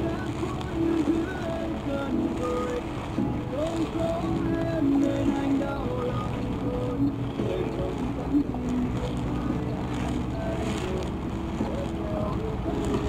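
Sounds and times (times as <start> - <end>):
song playing: 0.0 - 13.0
vehicle driving rumble: 0.0 - 13.0.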